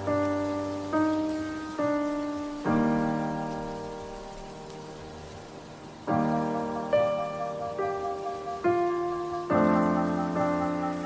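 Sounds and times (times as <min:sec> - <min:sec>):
piano chord ringing: 0:00.0 - 0:11.0
rain hiss: 0:00.0 - 0:11.0.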